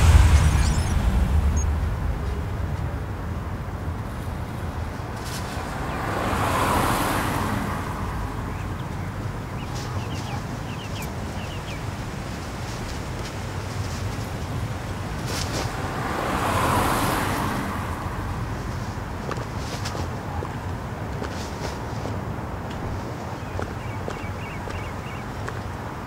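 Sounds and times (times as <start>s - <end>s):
deep low rumble: 0.0s - 4.9s
car passing: 0.0s - 21.0s, 22.4s - 26.0s.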